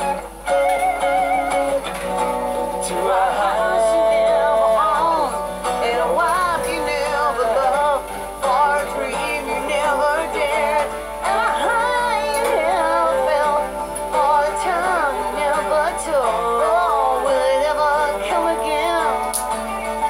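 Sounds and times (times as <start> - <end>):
acoustic rock accompaniment: 0.0 - 20.0
woman singing wordless vocal: 2.8 - 19.6.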